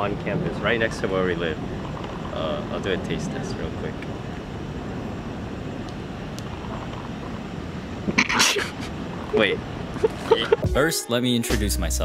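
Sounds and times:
outdoor background rumble: 0.0 - 10.7.

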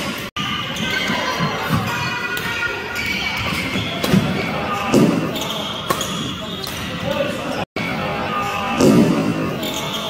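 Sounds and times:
racket hitting shuttlecock: 5.8 - 6.9.

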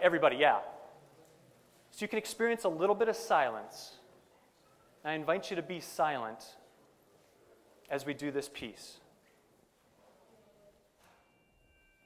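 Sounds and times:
faint chime ringing: 11.0 - 12.0.

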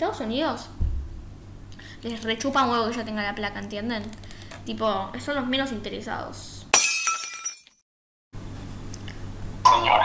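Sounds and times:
low room hum: 0.0 - 7.6, 8.4 - 10.0
glass shattering: 6.8 - 7.8.

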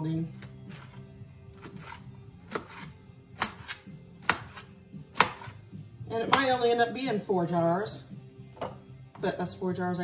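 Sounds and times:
knife chopping on cutting board: 0.4 - 5.6, 6.2 - 6.6.

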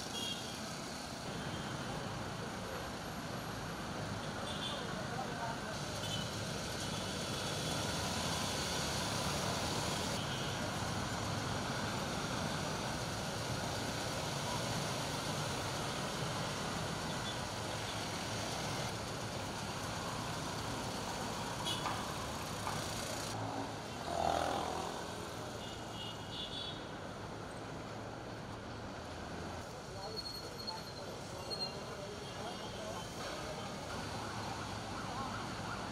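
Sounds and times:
road traffic: 0.0 - 35.9
louder vehicle passing: 23.3 - 25.3.

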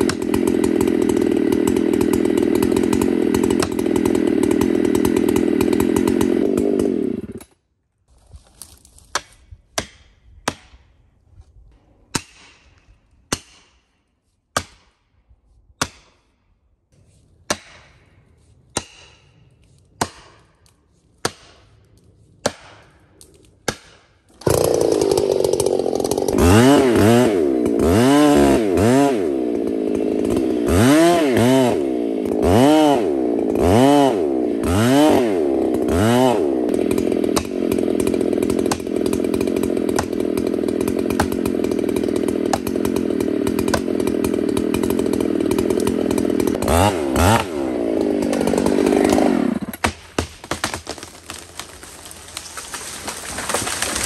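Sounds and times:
chainsaw cutting tree trunk: 0.0 - 7.6, 17.4 - 54.0.

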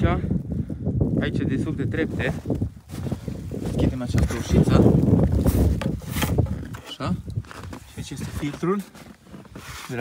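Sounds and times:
wind rumble on microphone: 0.0 - 8.8
microphone handling noise: 0.0 - 10.0.

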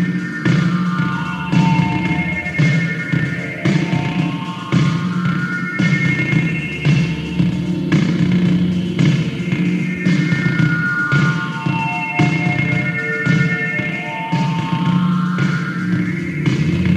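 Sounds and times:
electronic trance drone: 0.0 - 16.9
synthesizer arpeggios: 0.0 - 16.9.

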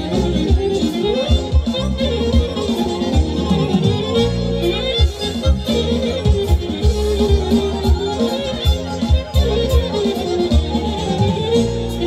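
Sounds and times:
folk band dance tune: 0.0 - 12.0
steady drum beat: 0.0 - 12.0.

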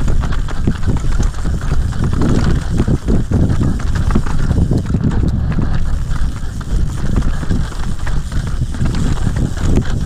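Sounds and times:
bike clicks and rattles: 0.0 - 10.0
bike tyres rumbling on dirt: 0.0 - 10.0.

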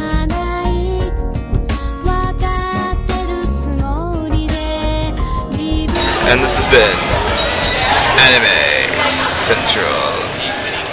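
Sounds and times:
indistinct voices talking: 5.8 - 10.9.

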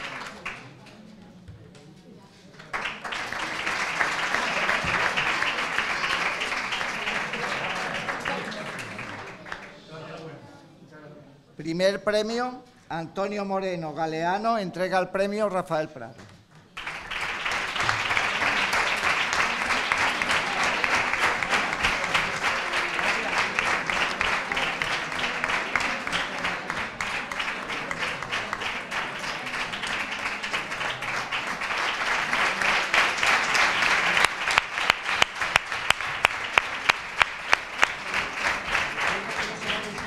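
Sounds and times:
audience applauding: 0.0 - 0.8, 2.6 - 9.8, 16.8 - 40.0
sharp individual claps: 16.8 - 40.0.

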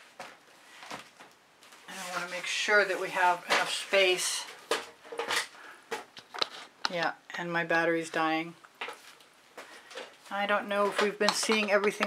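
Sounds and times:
person speaking: 1.9 - 4.6, 10.3 - 12.0
objects clicking and knocking: 4.5 - 7.0, 10.8 - 12.0.

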